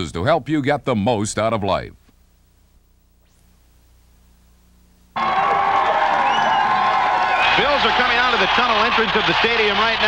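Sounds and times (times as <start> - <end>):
faint tape hiss: 0.0 - 10.0
stadium crowd cheering: 5.2 - 10.0.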